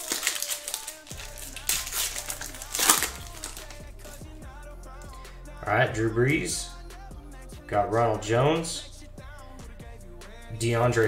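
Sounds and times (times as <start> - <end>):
foil wrapper crinkling and tearing: 0.0 - 4.2
background music: 0.0 - 11.0.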